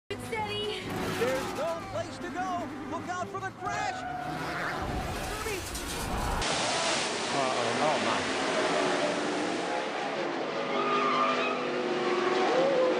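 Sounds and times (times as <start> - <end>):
race car engines: 0.1 - 12.9
tyres skidding: 0.1 - 12.9.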